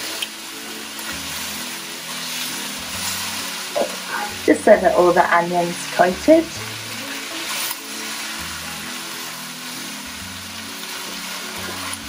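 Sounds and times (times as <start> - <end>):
background music: 0.0 - 12.0
onions sizzling in a frying pan: 0.0 - 12.0.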